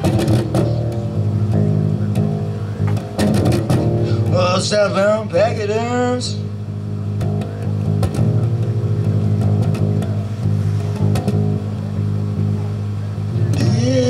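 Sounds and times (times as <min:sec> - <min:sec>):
electric bass guitar: 0:00.0 - 0:14.0
person singing: 0:13.4 - 0:14.0.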